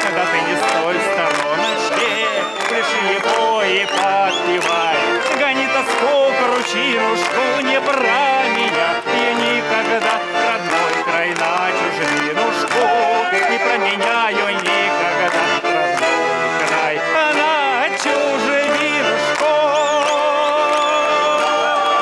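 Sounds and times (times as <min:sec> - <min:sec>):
button accordion folk melody: 0:00.0 - 0:22.0.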